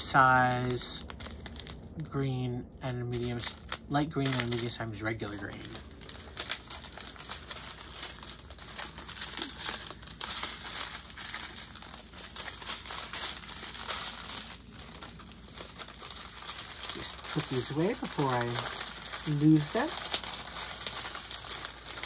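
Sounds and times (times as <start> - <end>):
plastic bags crinkling: 0.0 - 2.1, 3.1 - 22.0.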